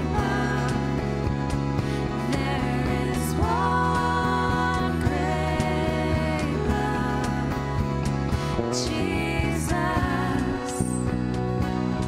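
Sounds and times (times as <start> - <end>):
person singing: 0.0 - 1.0, 2.2 - 7.7, 8.6 - 11.0
keyboard: 0.0 - 12.0
strummed acoustic guitars: 0.0 - 12.0.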